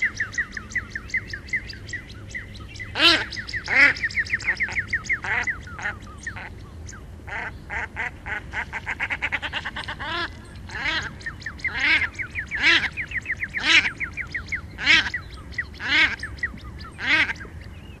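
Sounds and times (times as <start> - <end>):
shelduck calling: 2.9 - 6.6, 7.3 - 17.5.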